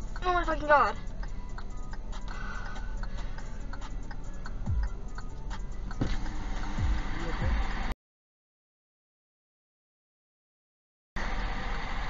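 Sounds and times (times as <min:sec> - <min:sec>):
low thump: 0:05.9 - 0:07.6.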